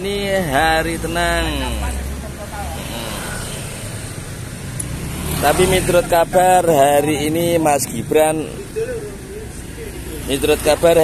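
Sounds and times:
street traffic hum: 0.0s - 11.0s
motor scooter passing: 1.5s - 7.5s.

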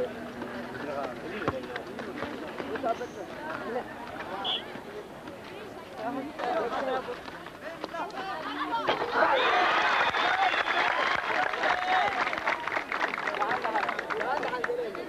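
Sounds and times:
crowd chattering and calling out: 0.0s - 15.0s.

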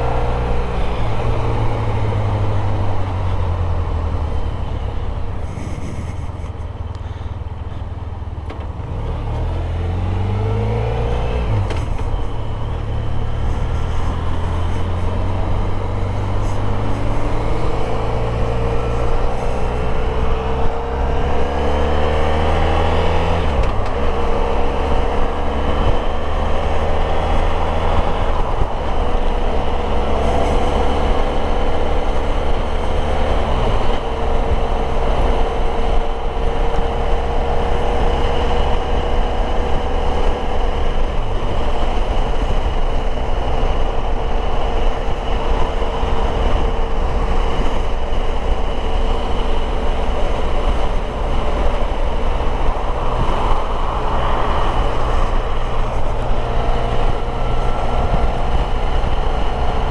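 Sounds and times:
motorcycle engine accelerating: 0.0s - 7.2s, 8.6s - 59.9s.

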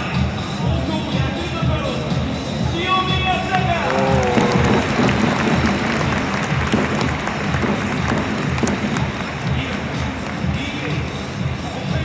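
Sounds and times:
music over public-address system: 0.0s - 12.0s
stadium crowd applauding: 3.4s - 11.9s.

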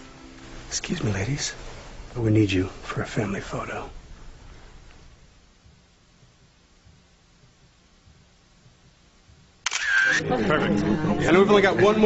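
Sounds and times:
camera shutter click: 9.6s - 10.2s.

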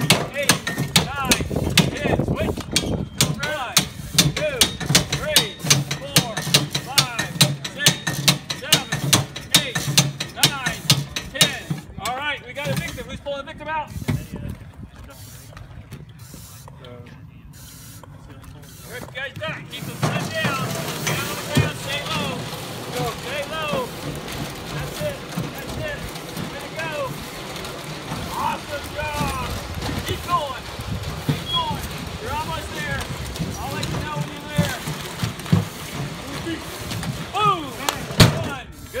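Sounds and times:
steel sled scraping on asphalt: 18.6s - 39.0s
people shouting: 37.3s - 37.9s.

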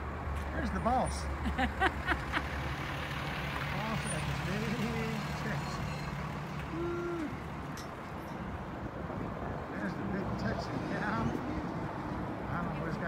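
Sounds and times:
vehicle engine idling: 0.6s - 8.6s.

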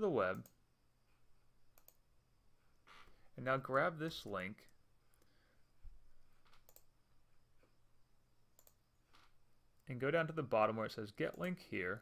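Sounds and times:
computer mouse clicks: 0.3s - 0.6s, 1.7s - 2.0s, 6.5s - 6.9s, 8.5s - 9.2s, 11.2s - 11.6s.

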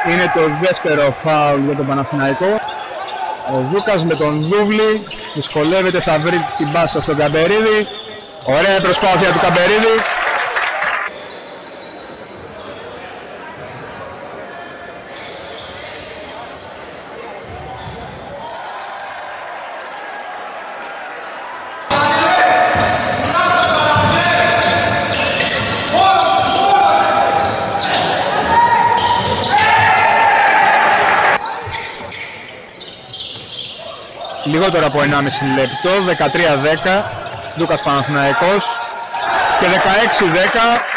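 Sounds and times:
faint voices in large hall: 0.0s - 40.9s.

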